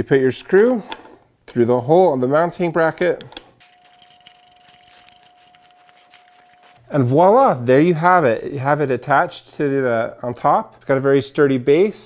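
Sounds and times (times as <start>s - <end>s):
screw clicking and rubbing: 3.6s - 6.8s.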